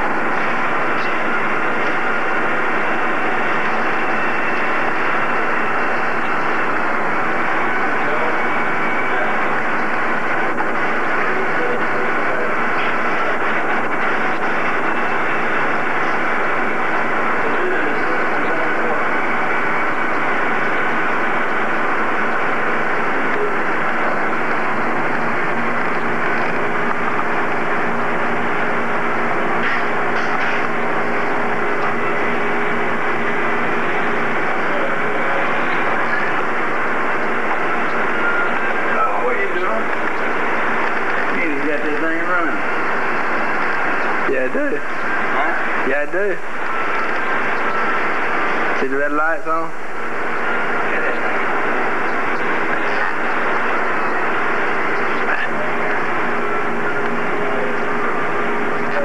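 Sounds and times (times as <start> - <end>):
faint steady hum: 0.0 - 59.0
indistinct chatter of voices: 0.0 - 59.0
room noise: 0.0 - 59.0.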